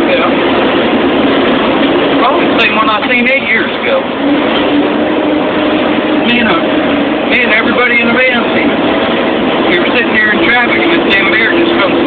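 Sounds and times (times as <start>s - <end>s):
truck engine rumbling: 0.0s - 12.0s.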